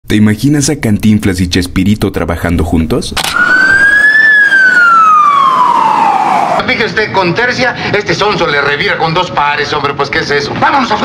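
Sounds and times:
fire engine siren wailing: 3.2 - 6.6.

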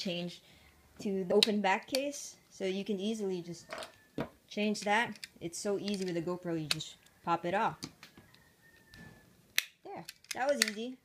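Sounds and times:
plastic latch click: 9.6 - 10.9.

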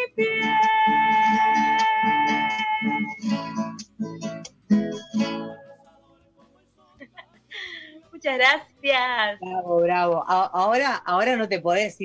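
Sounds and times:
acoustic guitar strumming: 0.0 - 10.3.

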